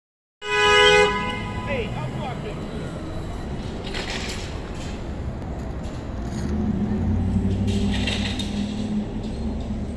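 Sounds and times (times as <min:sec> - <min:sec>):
vehicle horn toot: 0:00.4 - 0:02.0
street traffic rumble: 0:00.4 - 0:09.9.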